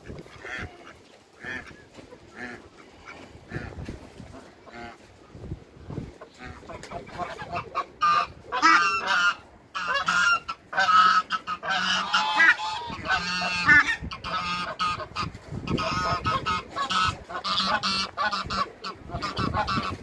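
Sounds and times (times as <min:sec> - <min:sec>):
waterfowl honking: 0:00.0 - 0:05.1, 0:06.2 - 0:20.0.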